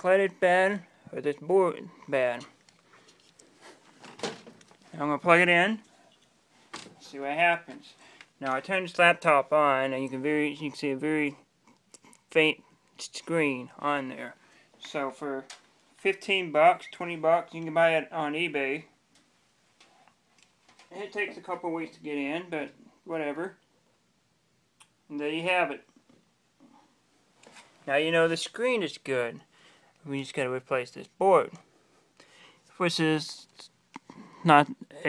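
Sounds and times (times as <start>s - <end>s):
handling noise knocks and rustles: 3.5s - 4.9s.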